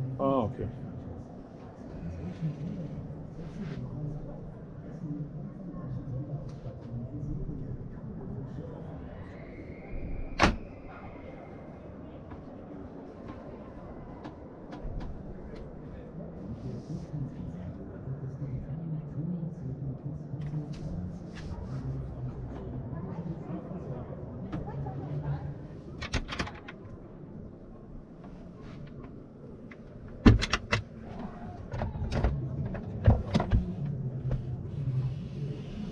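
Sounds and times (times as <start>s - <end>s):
murmur of voices: 0.0s - 35.9s
cabinet doors opening and shutting: 26.0s - 26.8s, 30.1s - 33.7s.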